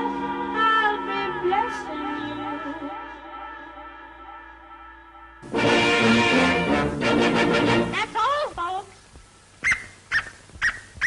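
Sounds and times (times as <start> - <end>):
cartoon dog yapping: 9.6 - 10.9.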